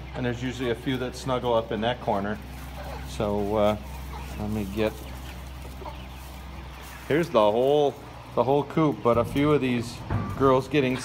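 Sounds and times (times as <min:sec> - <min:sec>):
hens clucking faintly: 0:00.0 - 0:11.0.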